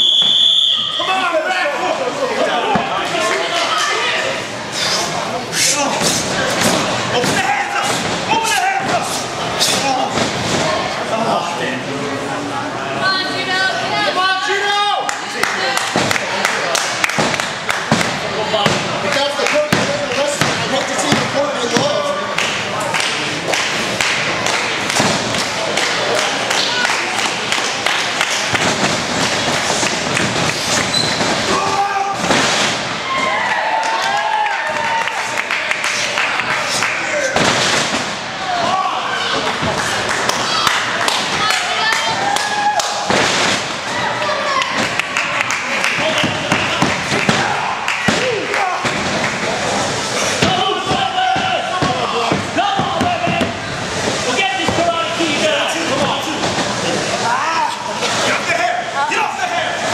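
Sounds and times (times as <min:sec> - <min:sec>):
spectators shouting and chatting: 0:00.0 - 0:59.9
people shouting: 0:05.6 - 0:10.2, 0:31.1 - 0:35.4, 0:46.0 - 0:49.1, 0:50.3 - 0:53.6.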